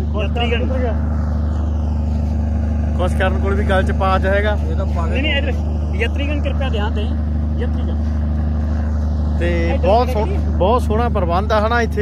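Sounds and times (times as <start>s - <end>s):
people talking: 0.0s - 1.1s, 2.9s - 8.2s, 9.4s - 12.0s
low engine drone: 0.0s - 12.0s.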